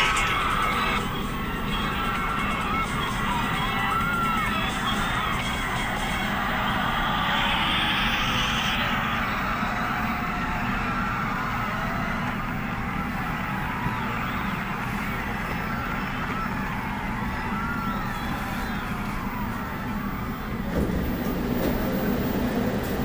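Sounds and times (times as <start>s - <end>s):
subway train rumbling: 0.0s - 23.0s
loud hiss: 5.0s - 10.7s.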